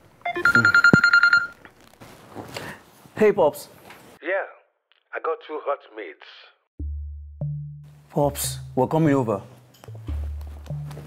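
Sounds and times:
mobile phone ringing: 0.2 - 1.6.

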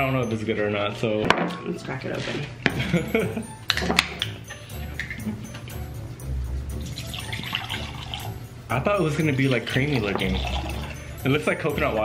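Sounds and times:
drink poured into a glass: 6.8 - 8.4, 9.6 - 11.0.

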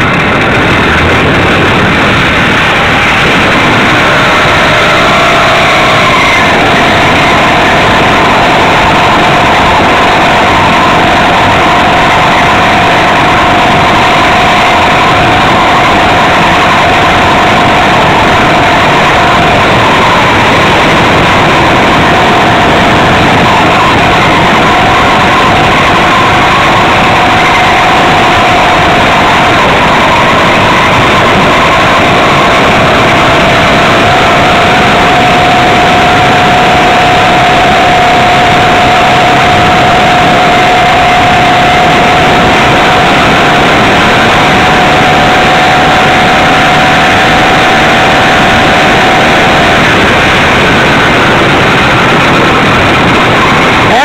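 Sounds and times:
two-stroke engine running: 0.0 - 54.0.

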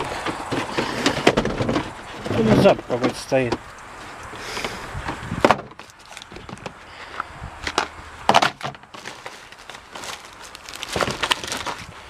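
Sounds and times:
cardboard packets rustling: 5.7 - 6.7, 7.6 - 12.0.

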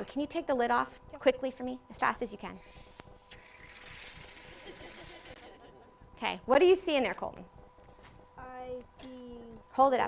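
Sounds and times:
gas hissing from bottle: 2.5 - 5.3.

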